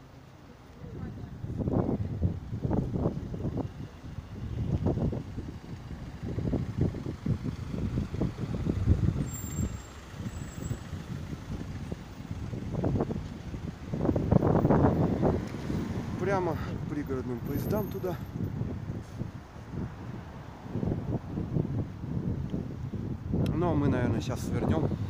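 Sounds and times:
motor vehicles passing: 0.0 - 25.0.

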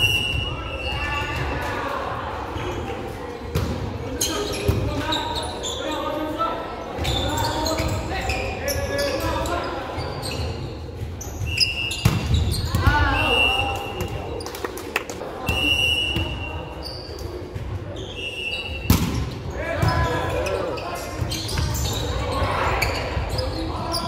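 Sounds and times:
players shouting and calling: 0.0 - 14.4, 15.2 - 24.0
high squeals: 7.0 - 13.7.

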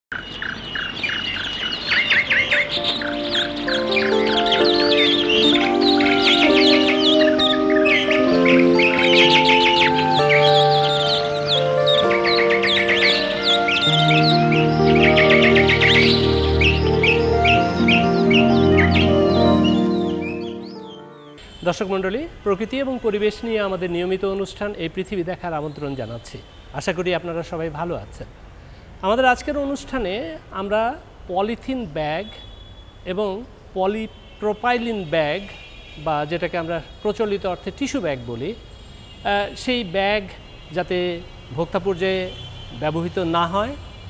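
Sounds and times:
songbirds calling: 0.1 - 22.0
calm music of held chords: 2.2 - 21.4.

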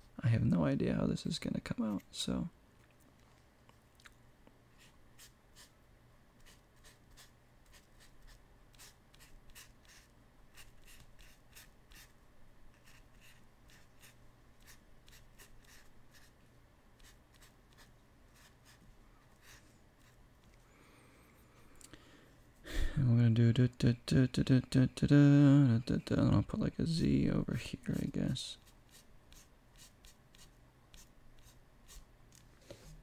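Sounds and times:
low steady hum: 0.0 - 33.0
paintbrush scratching: 6.4 - 16.4, 17.0 - 18.8, 27.8 - 32.1.

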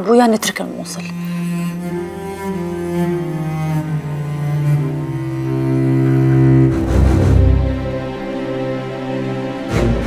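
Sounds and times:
low bowed strings: 0.0 - 10.0.

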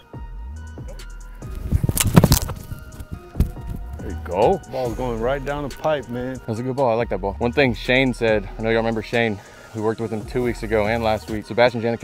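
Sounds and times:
background music: 0.0 - 12.0
foot kicking ball thud: 1.4 - 4.0.

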